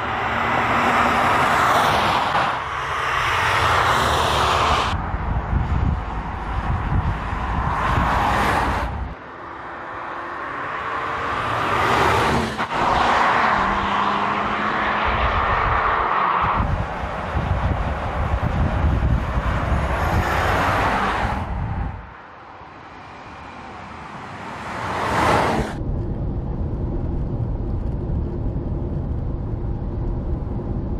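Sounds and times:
car passing with tyre noise: 0.0 - 25.9.

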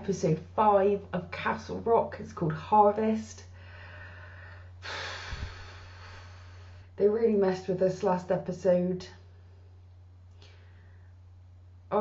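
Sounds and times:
low electrical hum: 0.0 - 12.0
faint breath: 3.5 - 7.0, 10.3 - 11.2.

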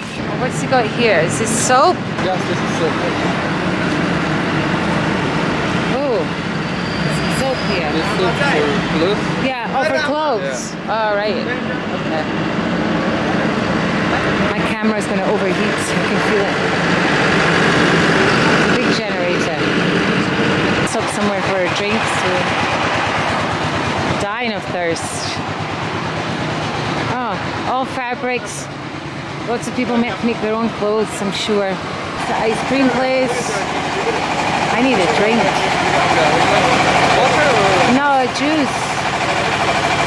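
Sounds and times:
generator engine hum: 0.0 - 40.0
murmur of voices: 0.0 - 40.0
traffic din: 0.0 - 40.0
man talking: 7.9 - 10.8, 35.6 - 37.9
person talking: 29.5 - 39.0.

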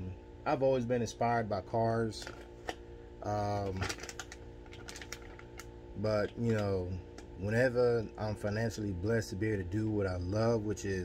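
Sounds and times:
steady low hum: 0.0 - 11.0
plastic bag crinkling: 3.5 - 7.2.

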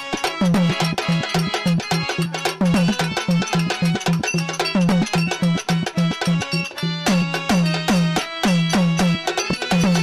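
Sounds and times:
hand drums playing: 0.0 - 10.0
harmonium chords: 0.0 - 10.0.

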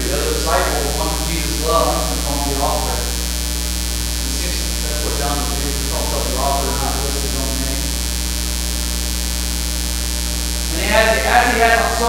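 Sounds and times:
man speaking: 0.0 - 3.2, 4.2 - 8.0, 10.7 - 12.0
electrical mains hum: 0.0 - 12.0.

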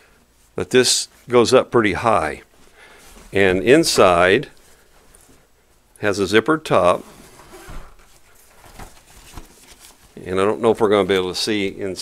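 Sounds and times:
backpack fabric rustling: 6.8 - 10.2.

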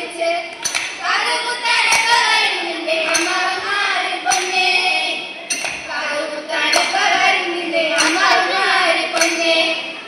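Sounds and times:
girls singing folk song: 0.0 - 10.0
hand claps: 0.6 - 1.0, 3.0 - 3.5, 4.3 - 4.7, 5.5 - 5.9, 6.7 - 7.1, 8.0 - 8.5, 9.1 - 9.7.

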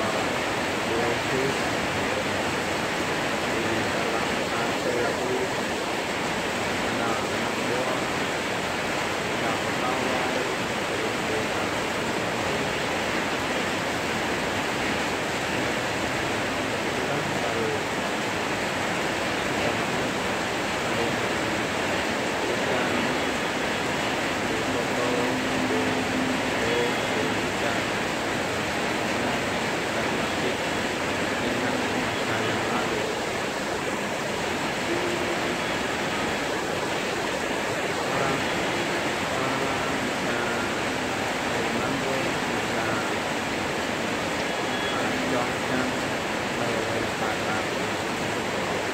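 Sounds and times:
heavy rain on metal roofs: 0.0 - 48.9.

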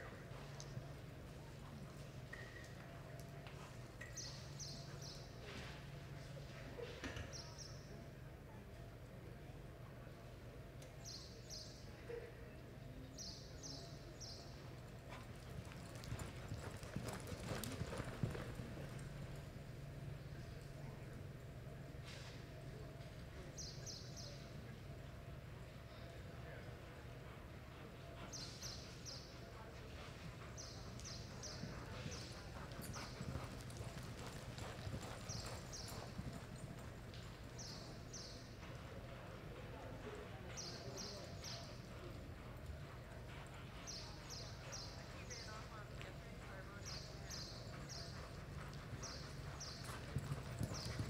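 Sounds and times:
horse hoofbeats on dirt: 14.2 - 19.7, 29.9 - 39.5, 40.1 - 51.0.

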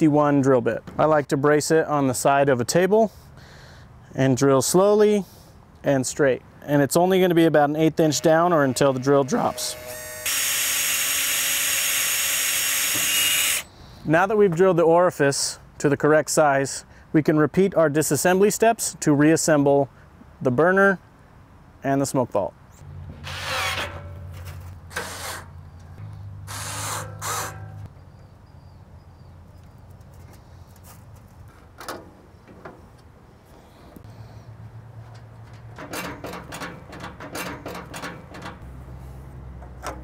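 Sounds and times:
cordless drill drilling brass: 8.0 - 13.7, 26.5 - 27.7.

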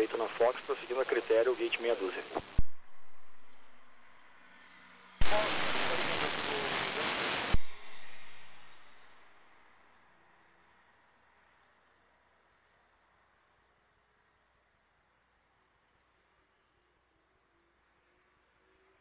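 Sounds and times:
radio static hiss: 0.0 - 4.3, 5.2 - 9.5.

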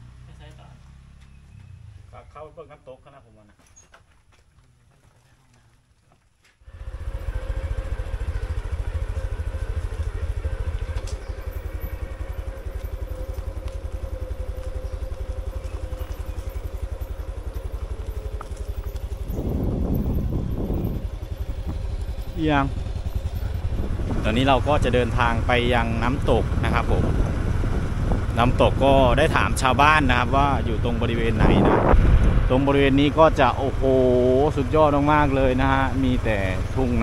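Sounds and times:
motorcycle engine running: 0.0 - 2.4, 6.6 - 37.0
wind on microphone: 18.9 - 22.4, 23.4 - 33.4.

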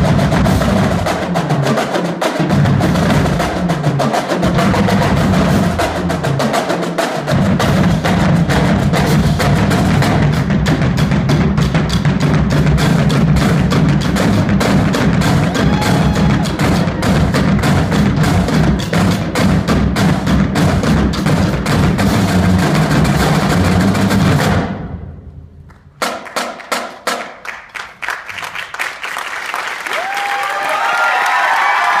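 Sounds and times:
separate drum hits: 0.0 - 25.3
marching drum line cadence: 0.0 - 32.0.

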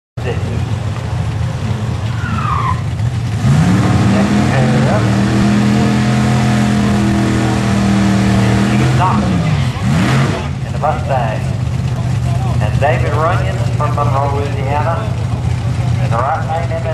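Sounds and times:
tyres squealing: 1.9 - 10.7
car engine revving high: 2.1 - 16.9.

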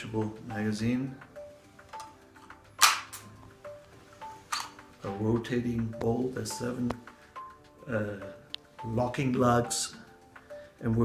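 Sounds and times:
faint background music: 0.0 - 11.0
metallic rifle magazine clicks: 2.8 - 3.3.

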